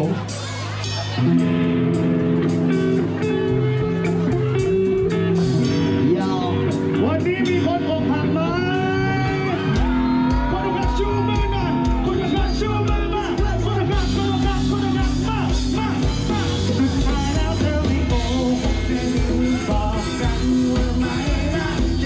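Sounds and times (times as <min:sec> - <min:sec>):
bass and drums beat: 0:00.0 - 0:22.0
guitar and keyboard chords: 0:00.0 - 0:22.0
person singing: 0:11.6 - 0:22.0.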